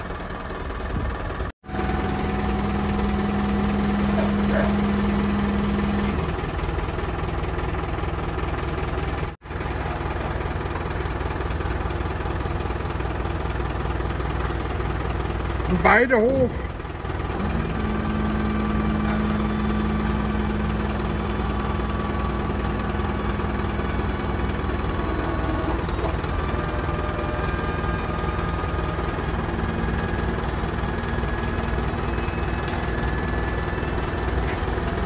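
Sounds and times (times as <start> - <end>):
hydraulic pump humming: 1.6 - 8.6, 9.8 - 35.0.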